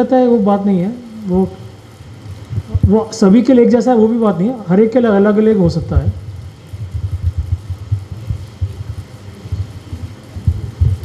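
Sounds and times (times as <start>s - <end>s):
microphone handling rumble: 2.5s - 3.1s, 5.8s - 11.0s.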